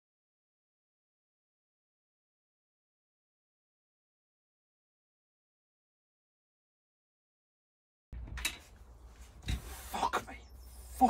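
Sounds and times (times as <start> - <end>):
rubbing and scraping: 8.2 - 11.0.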